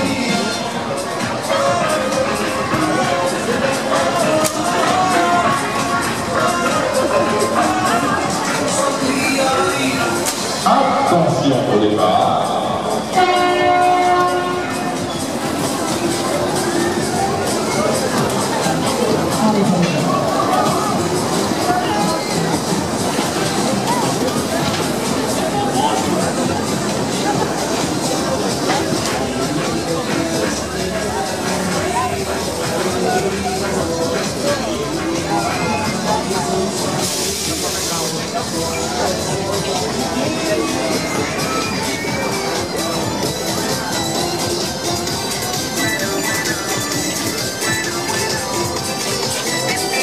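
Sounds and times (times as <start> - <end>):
loud ride music: 0.0 - 50.0
people's voices: 0.0 - 50.0.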